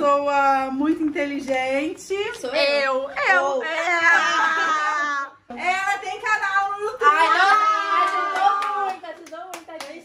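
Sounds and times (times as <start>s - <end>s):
excited drawn-out voices: 3.2s - 5.5s, 6.9s - 9.0s
hand claps: 8.0s - 10.0s.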